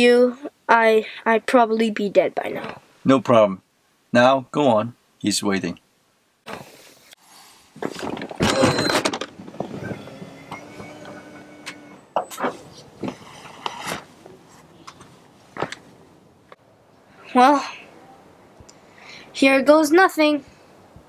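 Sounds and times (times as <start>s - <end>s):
knocks and thumps: 7.8s - 11.2s
car door opening: 8.0s - 13.2s.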